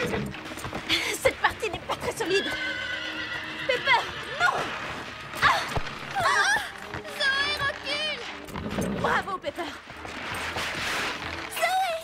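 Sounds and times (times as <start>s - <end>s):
horse whinnying: 2.1s - 5.8s.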